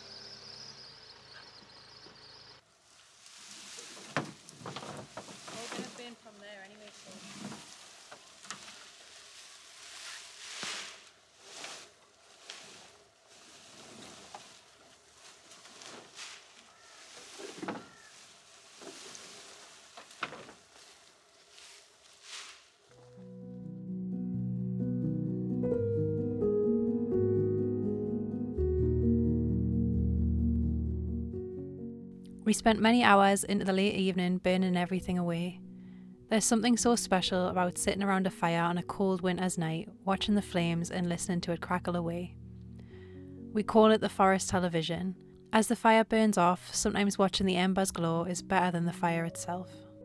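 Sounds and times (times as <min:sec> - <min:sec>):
branches rustling and thudding: 0:02.8 - 0:23.2
music: 0:22.9 - 0:50.0.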